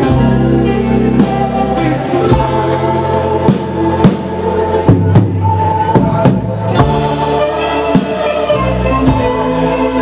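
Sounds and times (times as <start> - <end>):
bass guitar: 0.0 - 10.0
drum kit steady beat: 0.0 - 10.0
electric guitars: 0.0 - 10.0.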